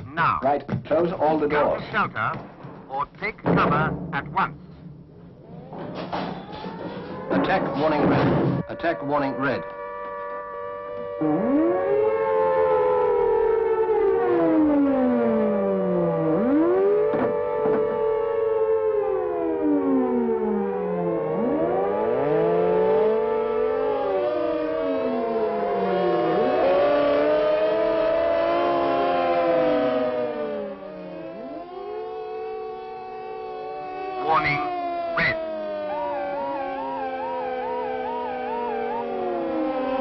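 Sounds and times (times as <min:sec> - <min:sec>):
air-raid sirens wailing: 0:05.0 - 0:40.0.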